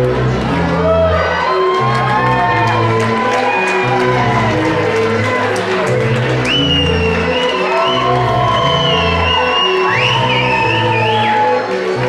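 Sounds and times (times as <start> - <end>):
runway music with bass line: 0.0 - 12.0.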